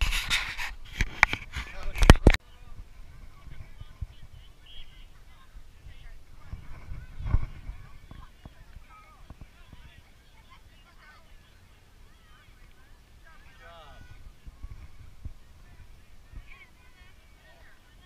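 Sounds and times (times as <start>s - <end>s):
faint distant voices: 0.0s - 18.0s.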